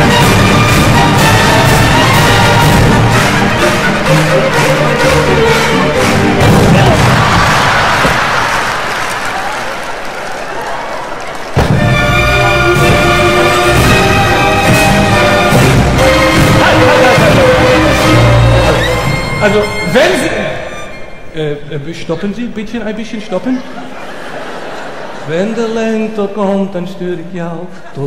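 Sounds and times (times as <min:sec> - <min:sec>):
orchestra music: 0:00.0 - 0:08.4, 0:11.6 - 0:23.4
audience applauding: 0:00.0 - 0:19.7.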